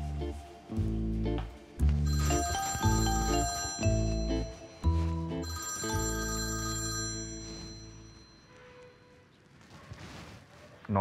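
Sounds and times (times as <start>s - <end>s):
mobile phone ringtone melody: 1.9s - 8.7s.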